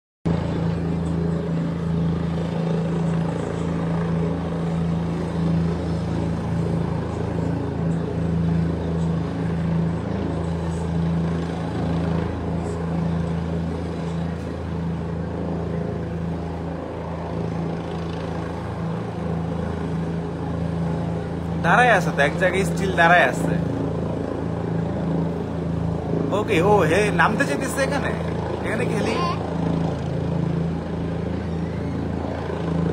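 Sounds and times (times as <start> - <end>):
helicopter hovering: 0.3 - 32.9.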